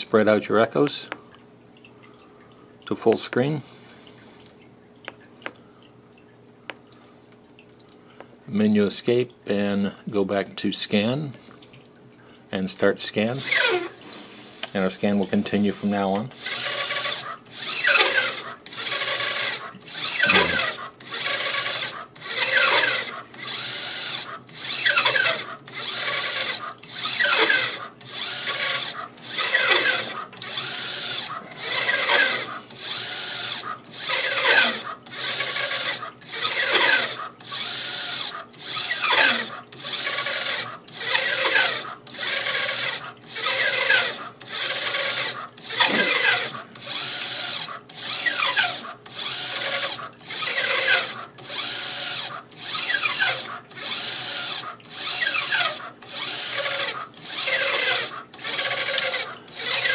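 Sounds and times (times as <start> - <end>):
motor whine moving carriage: 20.0 - 20.8.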